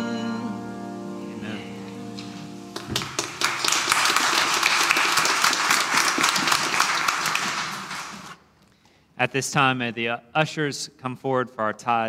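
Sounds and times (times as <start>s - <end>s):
congregation applauding: 2.2s - 8.4s.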